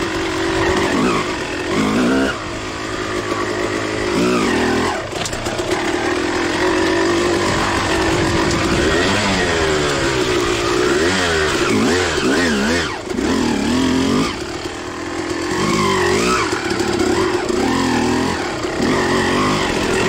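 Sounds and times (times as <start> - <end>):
dirt bike engine revving: 0.0 - 20.0.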